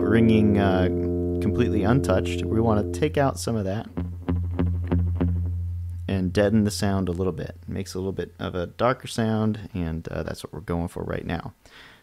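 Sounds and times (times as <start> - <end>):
palm-muted electric guitar notes: 0.0 - 7.7.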